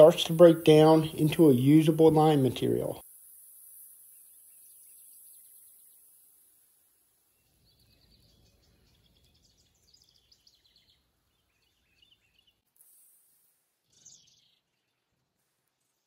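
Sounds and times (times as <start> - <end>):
faint outdoor ambience: 0.0 - 16.0
faint bird chirps: 2.8 - 12.7, 13.8 - 16.0.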